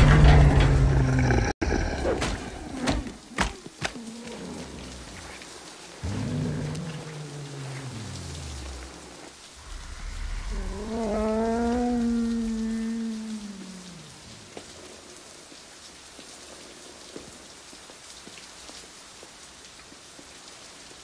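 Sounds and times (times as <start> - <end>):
deep rumble: 0.0 - 2.7, 6.0 - 14.6
monster moaning: 0.0 - 5.4, 6.0 - 15.0
heavy rain: 0.0 - 21.0.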